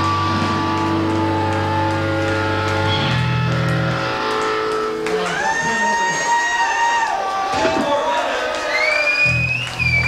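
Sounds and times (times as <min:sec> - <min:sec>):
electric guitar sustained notes: 0:00.0 - 0:06.3.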